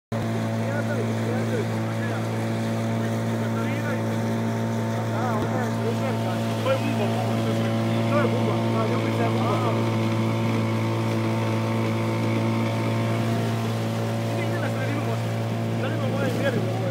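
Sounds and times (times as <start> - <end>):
outboard motor droning: 0.1 - 16.9.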